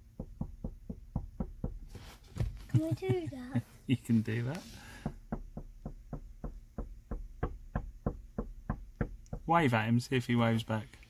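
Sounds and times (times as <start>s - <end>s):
fist knocking on car window: 0.0s - 3.2s, 4.9s - 9.6s.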